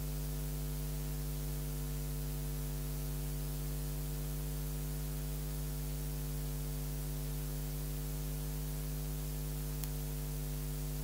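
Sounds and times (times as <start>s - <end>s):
electrical mains hum: 0.0s - 11.0s
faint click: 9.8s - 10.0s.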